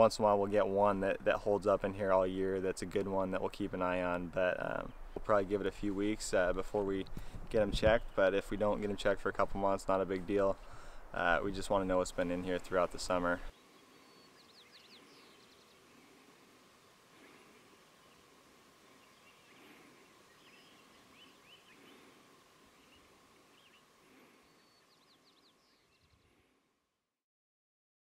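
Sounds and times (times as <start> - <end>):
faint birds chirping: 0.0 - 26.7
faint steady tone: 0.0 - 26.8.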